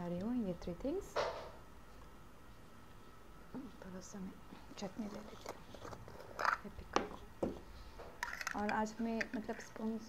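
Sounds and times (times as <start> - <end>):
screw cap twisting open on jar: 5.1 - 7.1, 8.2 - 9.8.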